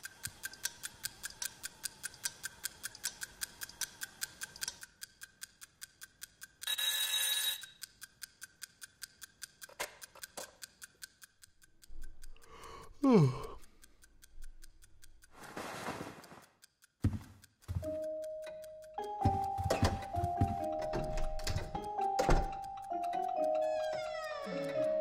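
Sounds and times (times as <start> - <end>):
clock ticking fast: 0.0 - 15.5, 16.2 - 25.0
alarm clock ringing: 6.6 - 7.8, 17.8 - 25.0.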